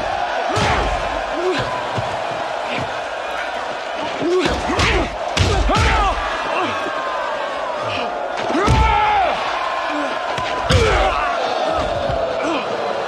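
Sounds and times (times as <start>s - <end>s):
crowd roar: 0.0s - 13.0s
fighters grunting and shouting: 0.0s - 13.0s.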